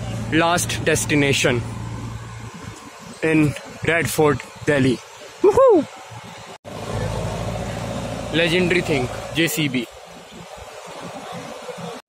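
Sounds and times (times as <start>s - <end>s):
diesel engine running: 0.0s - 5.2s, 6.7s - 12.0s.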